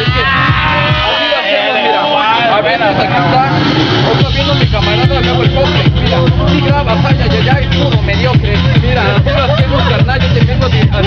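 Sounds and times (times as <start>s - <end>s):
man rapping: 0.0s - 11.0s.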